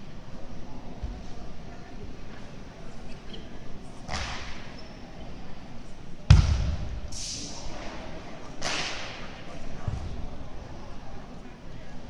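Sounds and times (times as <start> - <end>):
low boom in hall: 6.3 - 8.0.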